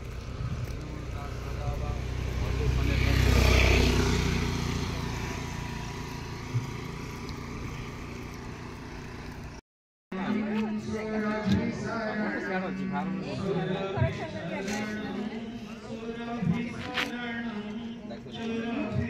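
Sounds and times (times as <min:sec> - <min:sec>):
motor scooter passing by: 0:00.0 - 0:09.6.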